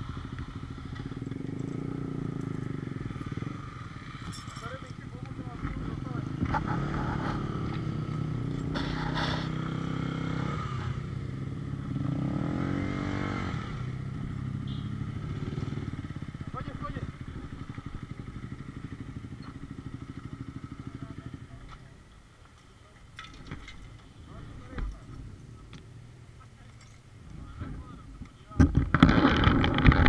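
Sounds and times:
motorcycle engine revving: 0.0 - 21.9, 28.7 - 30.0.

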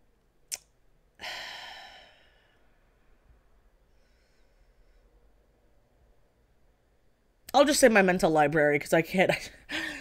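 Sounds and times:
mouth click: 0.5 - 0.8
person sighing: 1.2 - 2.6.

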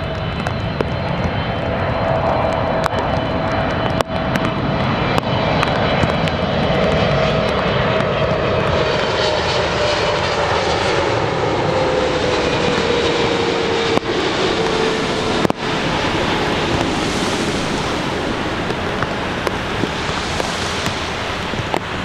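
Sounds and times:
jet airliner engine noise: 0.0 - 22.0
jet engine whine: 0.0 - 22.0.

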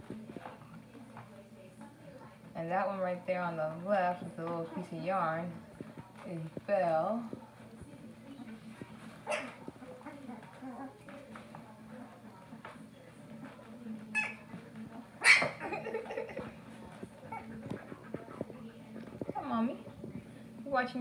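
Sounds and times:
puppies whimpering and squealing: 14.1 - 14.5.

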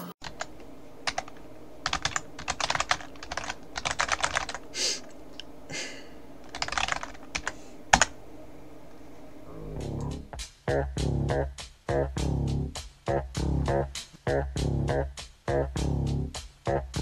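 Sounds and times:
computer keyboard typing: 0.2 - 5.2, 6.4 - 8.2.

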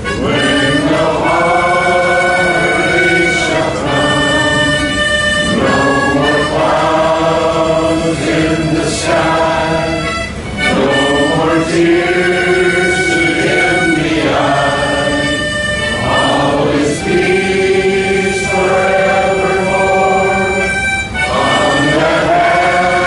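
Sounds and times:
harmonica playing chords: 0.0 - 23.0.

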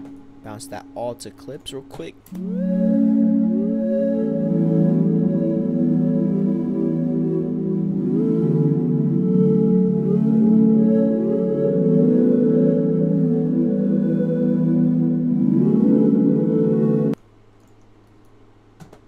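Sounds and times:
synthesizer pad chords: 0.0 - 17.2
faint hum: 0.0 - 19.0.

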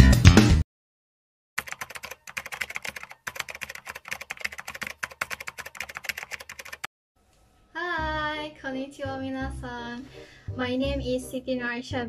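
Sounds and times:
rapid keyboard typing clicks: 1.6 - 6.9.

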